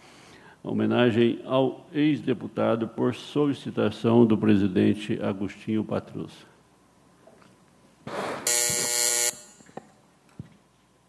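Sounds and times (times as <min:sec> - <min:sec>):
electric buzzer: 0:08.4 - 0:09.8.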